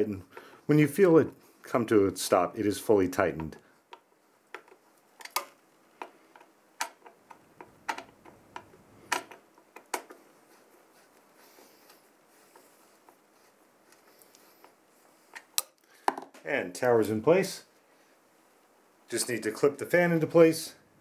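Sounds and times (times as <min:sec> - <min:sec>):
faint handling noise: 0:00.0 - 0:20.7.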